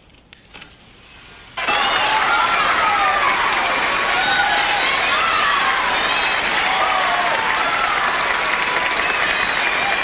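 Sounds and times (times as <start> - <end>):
crowd cheering and applause: 1.6 - 10.0
voices shouting: 1.6 - 10.0.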